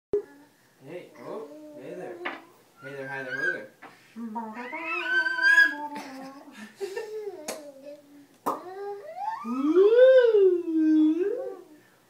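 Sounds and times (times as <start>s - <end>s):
toddler babbling: 7.2s - 9.9s.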